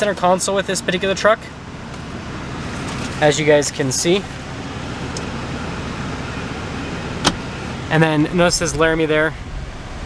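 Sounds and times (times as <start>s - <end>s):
truck cab hum: 0.0s - 10.0s.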